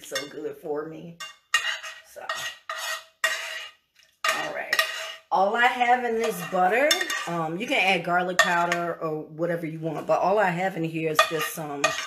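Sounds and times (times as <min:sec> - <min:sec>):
metal spoon scraping frying pan: 0:00.0 - 0:09.1, 0:09.8 - 0:12.0.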